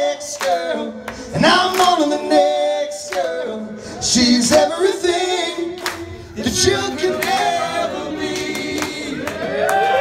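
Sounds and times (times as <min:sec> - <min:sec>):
voices singing held notes: 0:00.0 - 0:09.7.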